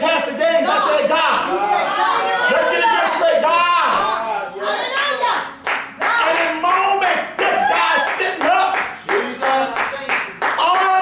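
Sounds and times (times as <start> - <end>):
hand clapping: 5.0 - 6.8, 7.4 - 11.0.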